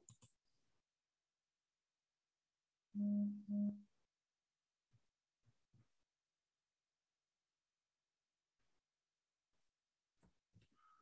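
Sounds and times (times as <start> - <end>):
low electronic beeps: 3.0 - 3.8.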